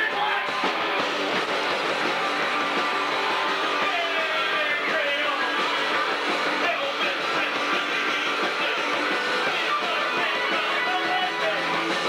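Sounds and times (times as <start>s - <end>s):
drums: 0.0s - 12.0s
electric guitars: 0.0s - 12.0s.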